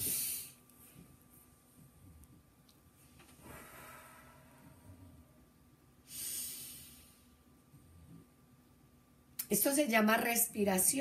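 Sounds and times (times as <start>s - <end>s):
woman breathing deeply: 3.4s - 5.4s, 6.0s - 7.4s.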